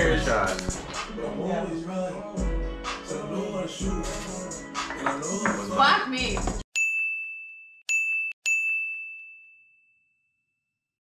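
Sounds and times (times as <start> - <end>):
bell ding: 6.8 - 10.6.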